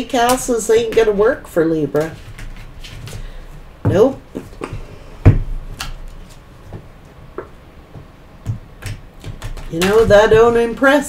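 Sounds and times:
cards slapping and clicking on desk: 4.3 - 10.8
dull thud: 4.7 - 5.7.

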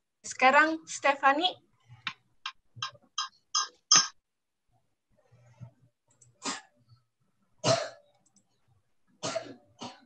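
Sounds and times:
person coughing: 7.6 - 8.0, 9.2 - 10.0.

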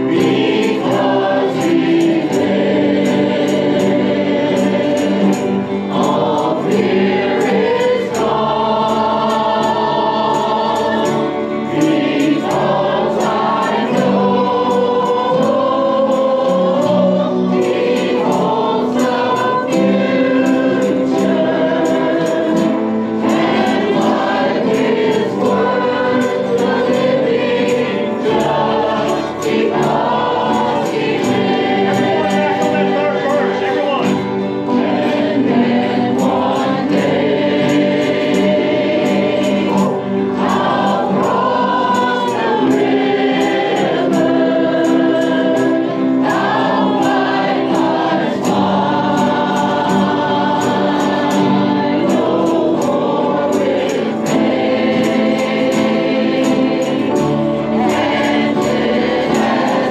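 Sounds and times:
choir singing gospel song: 0.0 - 59.9.

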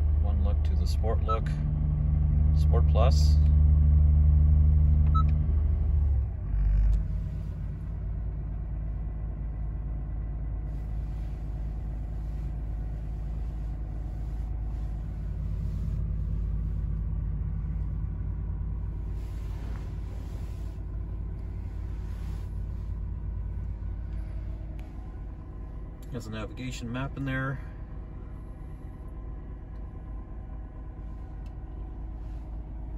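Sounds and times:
car engine idling: 0.0 - 32.9.

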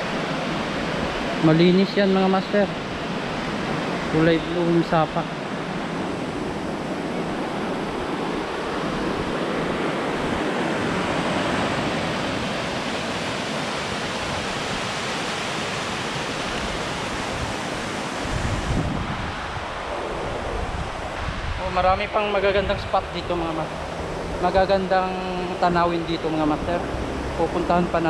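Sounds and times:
wind buffeting microphone: 5.4 - 24.8.

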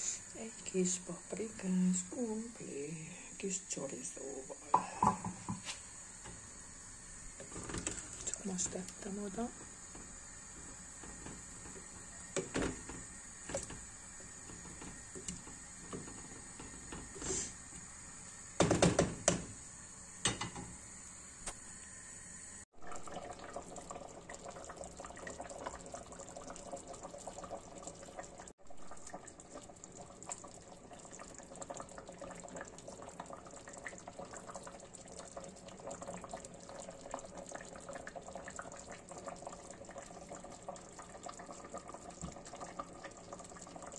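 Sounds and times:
stew bubbling in a pot: 0.0 - 21.1, 22.7 - 43.9.

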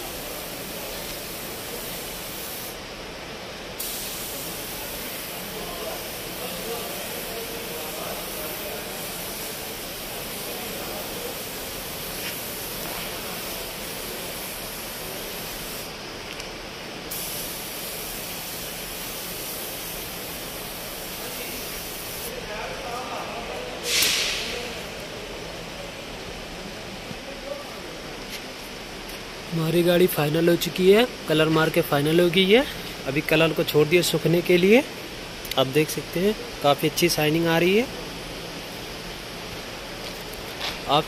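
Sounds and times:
paint spray gun hissing: 0.0 - 2.8, 3.8 - 22.4, 23.8 - 25.1.

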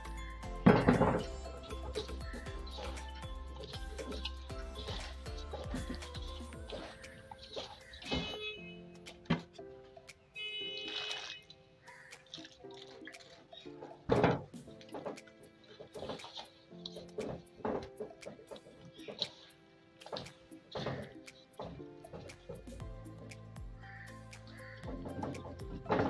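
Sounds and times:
background music: 0.0 - 26.0
water splashing: 0.0 - 26.0
hands squelching in wet mash: 0.8 - 9.5, 10.1 - 26.0.

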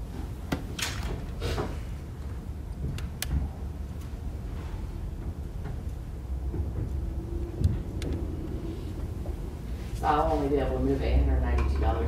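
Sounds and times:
faint hum: 0.0 - 12.0
low room rumble: 0.0 - 12.0.

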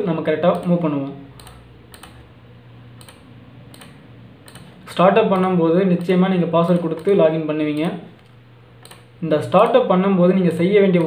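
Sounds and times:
mouse clicks: 1.4 - 2.2, 3.0 - 9.8.

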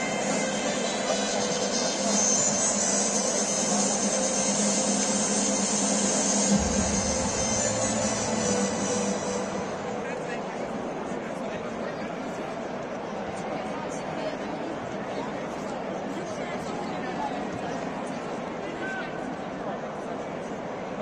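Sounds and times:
music over public address system: 0.0 - 11.7
low rumble: 6.4 - 11.0.

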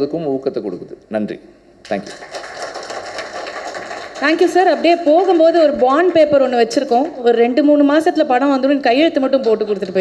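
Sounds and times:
audience applauding: 1.9 - 6.2.

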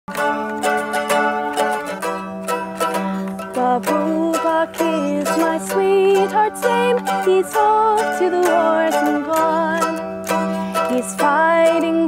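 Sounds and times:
mandolin strumming: 0.1 - 12.0.

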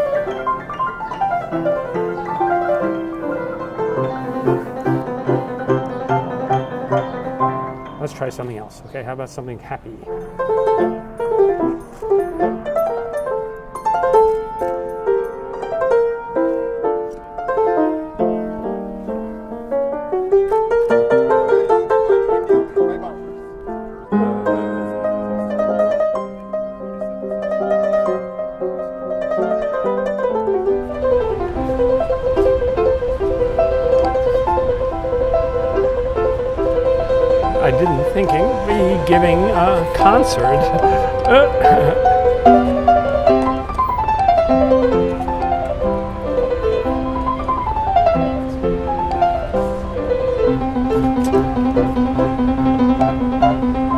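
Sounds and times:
upright piano playing: 0.0 - 53.9.

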